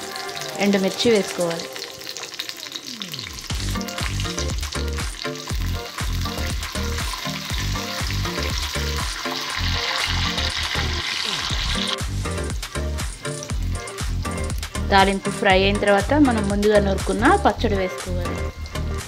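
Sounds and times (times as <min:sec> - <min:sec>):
oil sizzling: 0:00.0 - 0:19.0.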